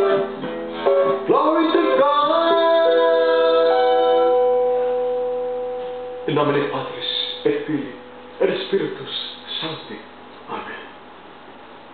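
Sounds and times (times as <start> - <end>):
guitar chord ringing out: 0.0 - 9.6.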